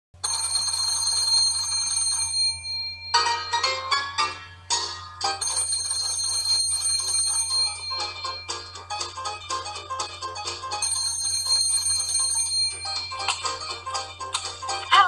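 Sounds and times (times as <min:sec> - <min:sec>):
telephone bells ringing: 0:00.2 - 0:04.6, 0:05.2 - 0:08.9, 0:10.7 - 0:13.9.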